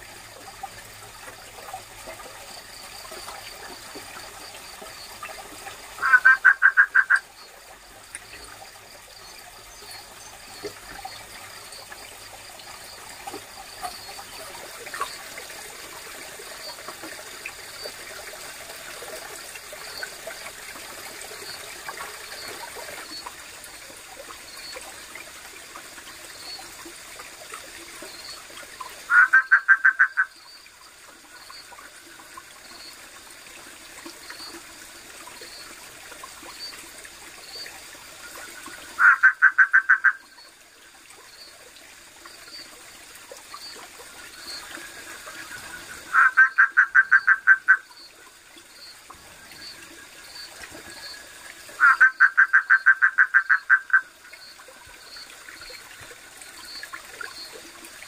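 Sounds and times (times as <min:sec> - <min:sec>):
stream running: 0:00.0 - 0:58.0
frog calling rattling pulses: 0:06.0 - 0:07.5, 0:29.0 - 0:30.6, 0:38.9 - 0:40.4, 0:45.3 - 0:51.2, 0:51.8 - 0:55.7.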